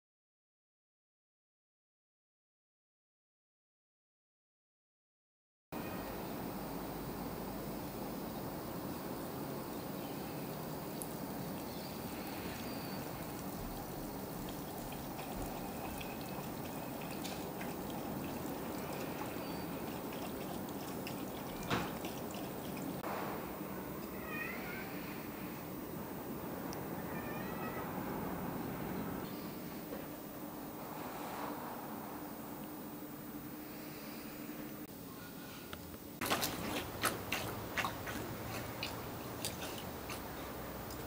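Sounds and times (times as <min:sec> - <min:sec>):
outdoor hiss: 0:05.8 - 0:41.0
bird chirping: 0:09.6 - 0:23.0.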